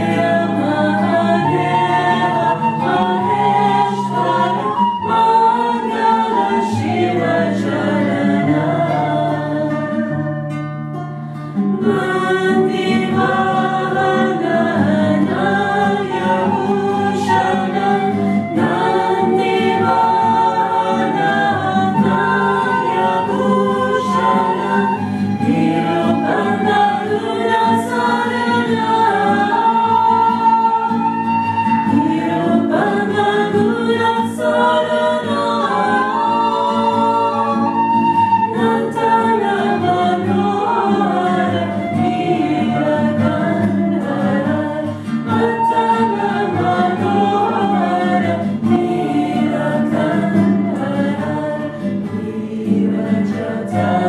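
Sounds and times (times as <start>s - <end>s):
women singing devotional chant: 0.0s - 10.1s, 11.8s - 54.0s
strummed acoustic guitar: 0.0s - 54.0s.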